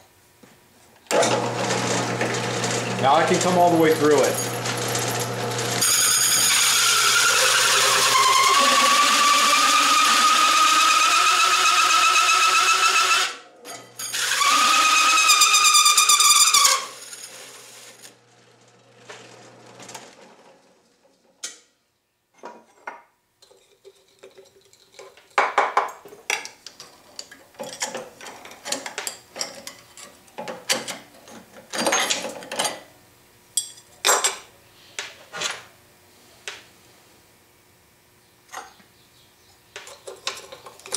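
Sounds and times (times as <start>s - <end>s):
drill press motor hum: 1.1s - 20.0s
hole saw screeching through steel: 1.3s - 18.0s.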